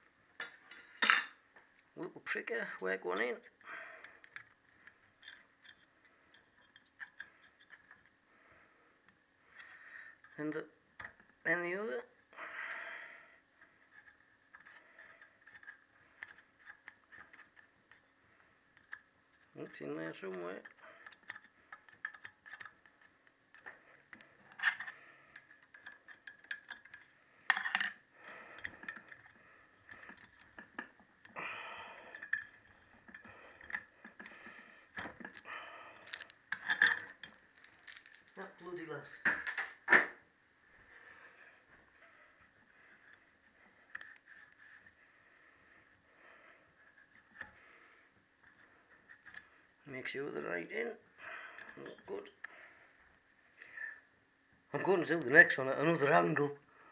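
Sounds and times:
metal tools clicking and scraping: 24.4s - 29.3s, 32.1s - 35.4s, 36.0s - 38.5s.

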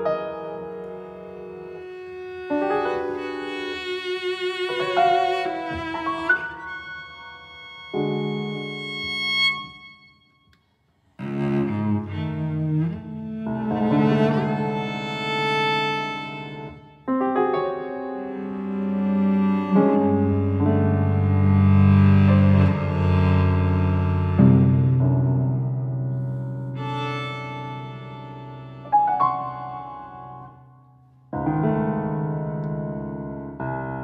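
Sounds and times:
grand piano: 0.0s - 34.0s.

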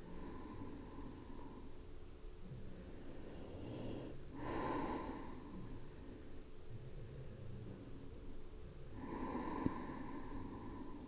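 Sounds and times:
person breathing: 0.0s - 8.1s, 8.8s - 11.0s
hissy breath: 2.6s - 6.4s, 8.9s - 11.0s.

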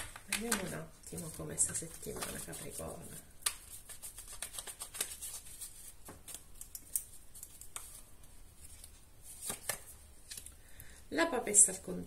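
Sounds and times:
cards being shuffled: 0.0s - 8.0s, 8.6s - 10.5s
cards snapping: 3.4s - 5.4s.

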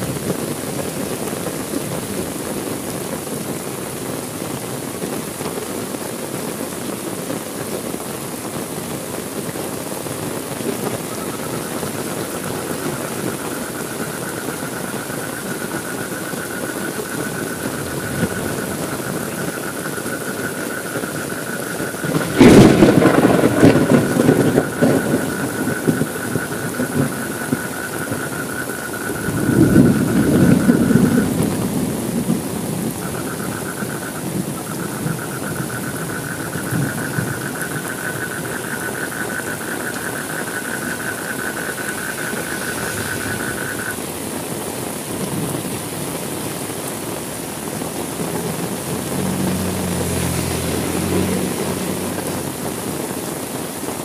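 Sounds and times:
steady rain falling: 0.0s - 54.0s
thunder crack and rumble: 17.0s - 20.1s, 21.0s - 44.2s.

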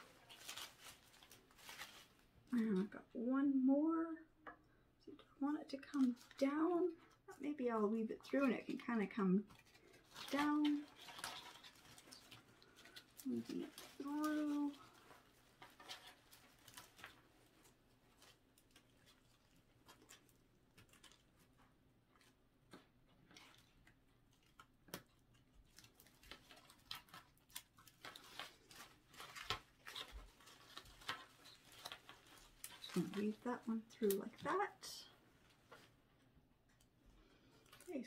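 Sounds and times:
rustling of artificial leaf stems: 0.0s - 3.1s, 4.4s - 38.0s.

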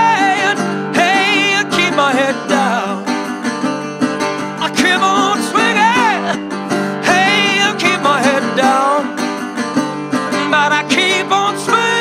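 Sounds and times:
slide guitar: 0.0s - 12.0s.

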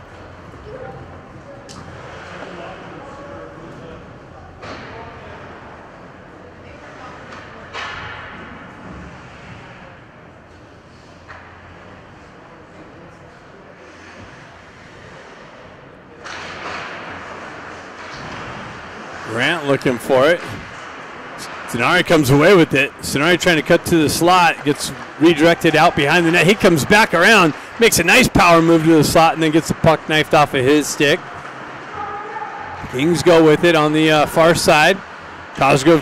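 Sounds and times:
voices echoing in arena: 0.0s - 10.4s, 11.2s - 36.0s
loud rush of noise: 18.2s - 36.0s.

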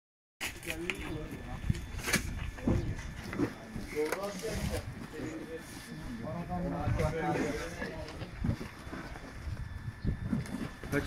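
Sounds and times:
indistinct chatter: 0.4s - 11.0s.

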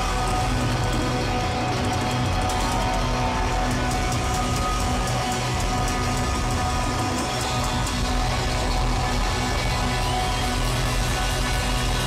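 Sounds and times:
bass guitar: 0.0s - 12.0s
drums: 0.0s - 12.0s
electric guitars: 0.0s - 12.0s.

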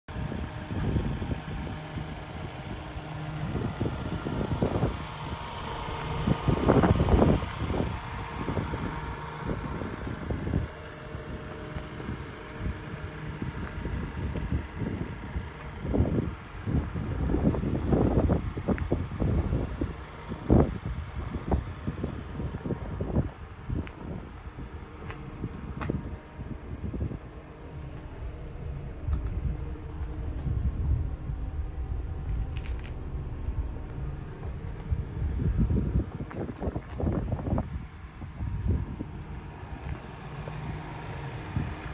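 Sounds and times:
wind buffeting microphone: 0.1s - 41.9s
faint steady hum: 0.2s - 41.9s.

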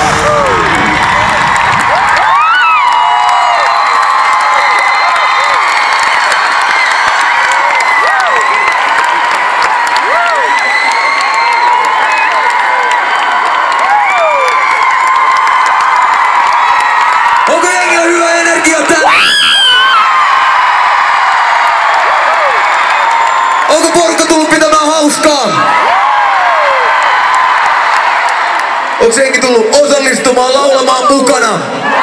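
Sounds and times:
crowd cheering and screaming: 0.0s - 32.0s
clapping: 0.9s - 19.0s, 20.8s - 24.5s, 26.3s - 29.0s.

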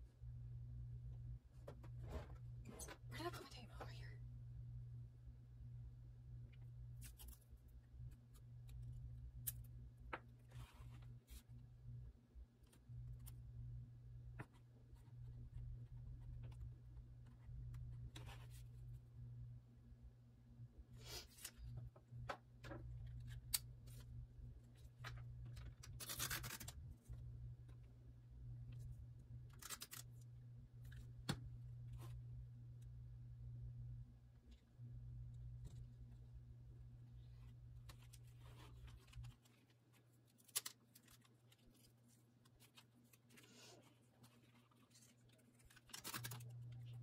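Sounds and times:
faint low hum: 0.0s - 47.0s.

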